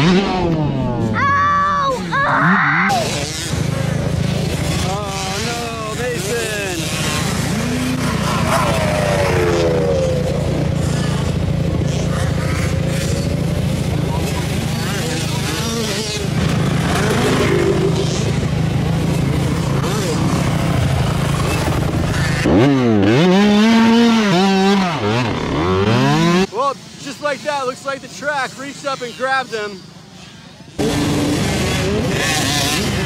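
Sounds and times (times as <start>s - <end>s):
motocross bike engines revving: 0.0s - 33.0s.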